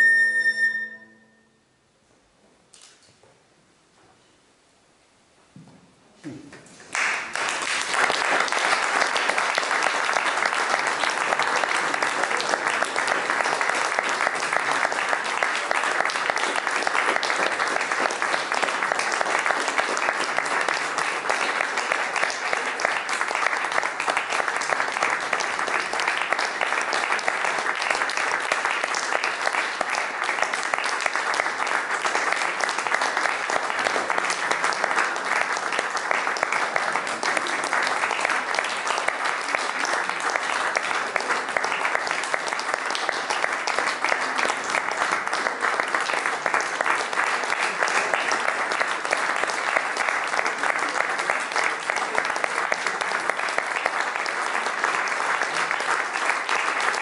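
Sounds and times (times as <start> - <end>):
audience applauding: 6.8 - 57.0.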